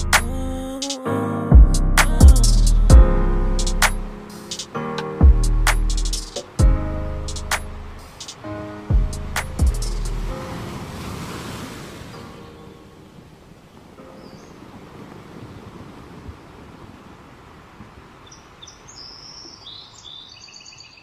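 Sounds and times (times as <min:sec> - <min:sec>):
outdoor ambient noise: 0:00.0 - 0:21.0
birds chirping: 0:12.0 - 0:14.9, 0:18.0 - 0:21.0.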